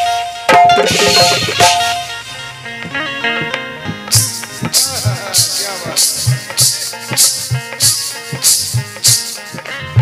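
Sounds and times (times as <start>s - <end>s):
pitched melody accompaniment: 0.0s - 10.0s
drum beat: 0.5s - 2.2s, 2.8s - 10.0s.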